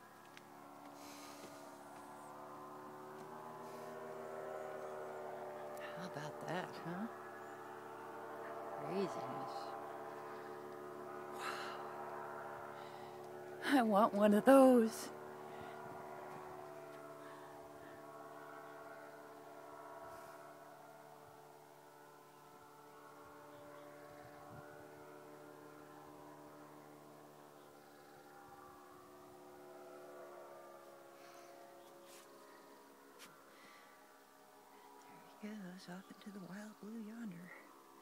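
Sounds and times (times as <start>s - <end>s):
distant paraglider engine drone: 0.0s - 38.0s.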